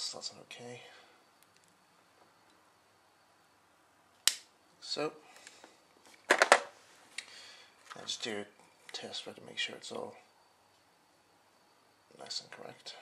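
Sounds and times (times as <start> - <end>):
wire cutters snipping click: 4.2 - 4.5.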